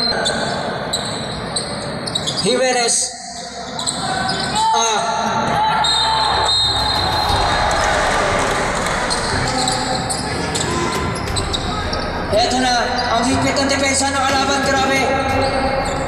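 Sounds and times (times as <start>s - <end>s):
din of spectators: 3.4s - 16.0s
people shouting: 5.5s - 11.2s.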